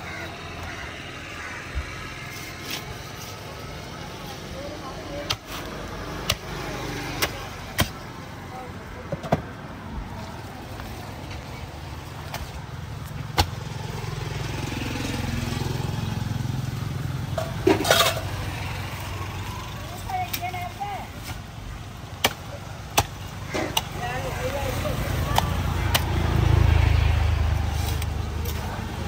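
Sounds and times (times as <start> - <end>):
road vehicle rumble: 0.0 - 29.0.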